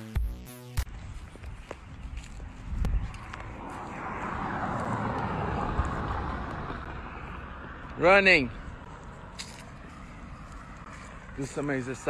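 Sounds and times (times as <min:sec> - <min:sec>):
vehicle passing by: 0:01.8 - 0:12.0.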